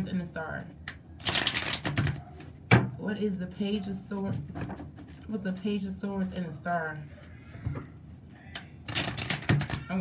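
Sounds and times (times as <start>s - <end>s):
cards being shuffled: 8.9s - 9.9s.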